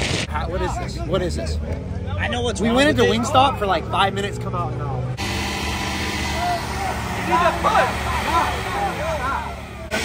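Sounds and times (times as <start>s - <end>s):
motorhome engine rumbling: 0.1s - 10.0s
people calling out and laughing: 0.5s - 10.0s.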